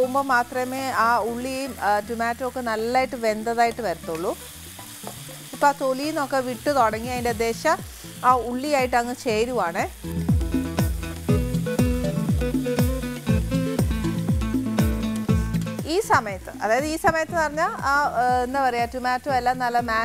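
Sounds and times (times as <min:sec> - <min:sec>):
background music: 0:00.0 - 0:20.0
vegetables sizzling in a frying pan: 0:00.0 - 0:20.0
steady beat: 0:09.9 - 0:20.0.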